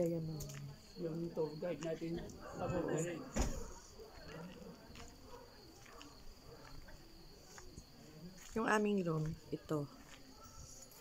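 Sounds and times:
crickets trilling: 0.0s - 11.0s
soft footsteps: 3.6s - 11.0s.

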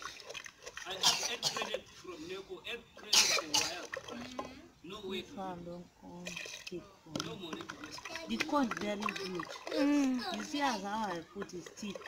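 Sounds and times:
person clearing throat: 1.0s - 1.8s, 3.1s - 3.8s.

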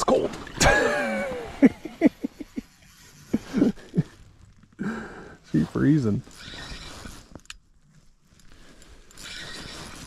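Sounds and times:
man grunting laughs and gasps: 0.6s - 2.6s, 3.3s - 4.2s.

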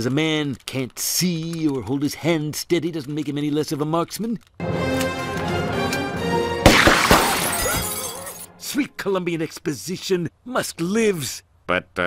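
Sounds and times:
background music: 4.6s - 9.0s
window glass shattering: 6.7s - 8.6s.

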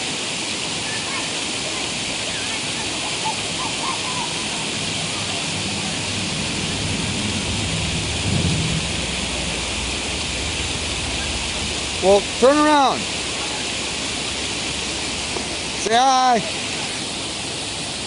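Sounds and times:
rushing water hiss: 0.0s - 18.0s
low rumble: 4.7s - 15.9s.

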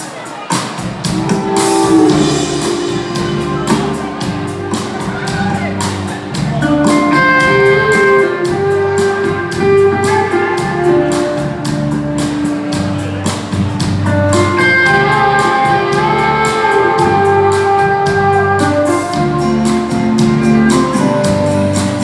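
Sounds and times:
drum kit steady beat: 0.5s - 22.0s
lap steel guitar sliding notes: 1.0s - 12.9s, 14.1s - 22.0s.

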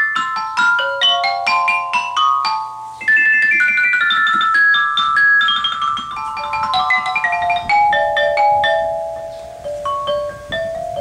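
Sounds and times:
ceramic mallet keyboard notes: 0.0s - 11.0s.

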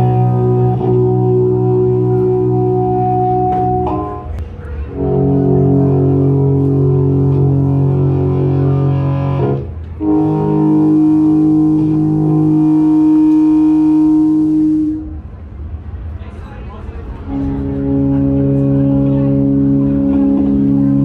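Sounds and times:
electric guitar sustained notes: 0.0s - 15.2s, 17.3s - 21.0s.

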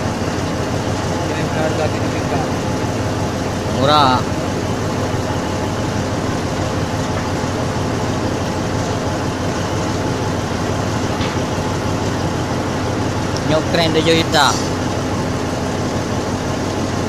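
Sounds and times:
diesel engine running steadily: 0.0s - 17.0s.

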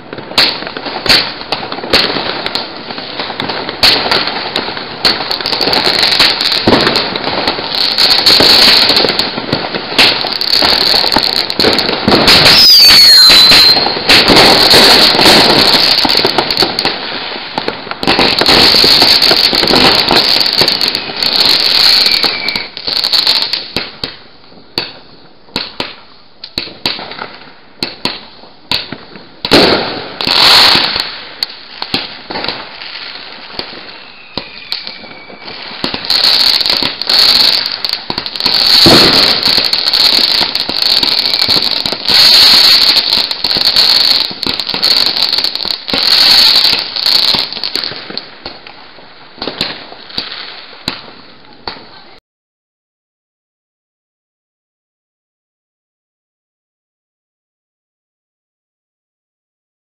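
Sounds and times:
fireworks crackling and banging: 0.0s - 52.2s.

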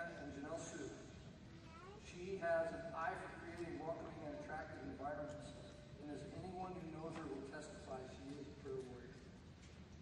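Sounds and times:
man speaking: 0.0s - 1.1s, 2.0s - 9.2s.

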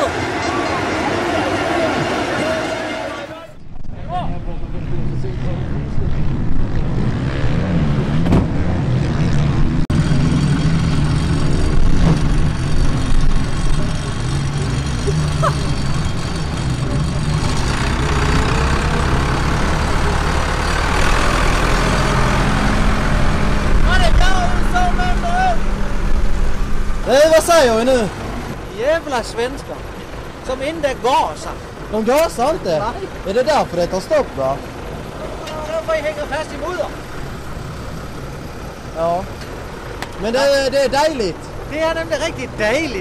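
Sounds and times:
tractor diesel engine running: 9.9s - 43.0s.

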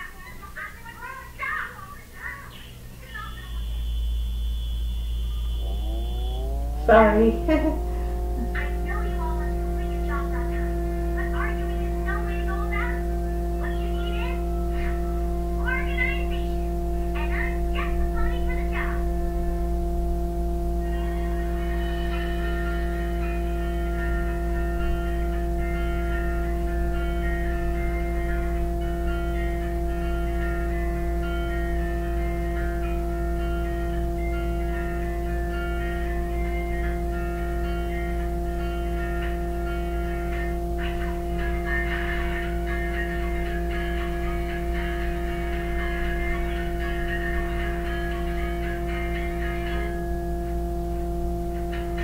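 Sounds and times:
steady low hum: 0.0s - 52.0s
plucked-string cartoon music: 5.6s - 50.0s.

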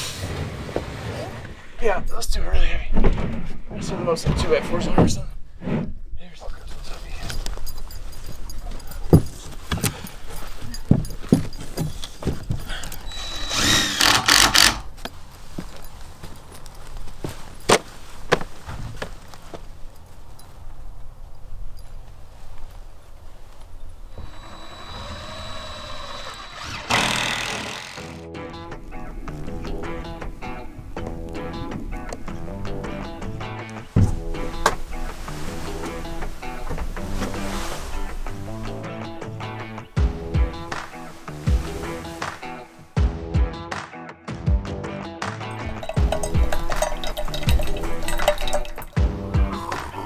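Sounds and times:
music: 26.9s - 50.0s.

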